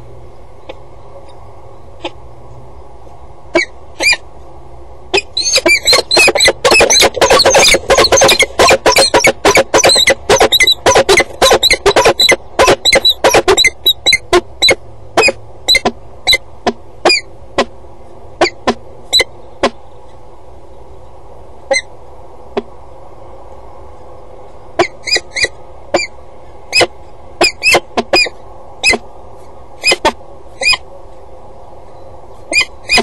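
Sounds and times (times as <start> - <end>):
falcons harsh calls: 5.1 - 15.9, 32.5 - 33.0.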